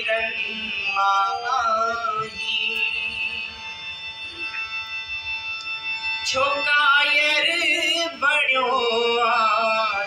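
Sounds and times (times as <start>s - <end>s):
keyboard holding steady chords: 0.0s - 10.0s.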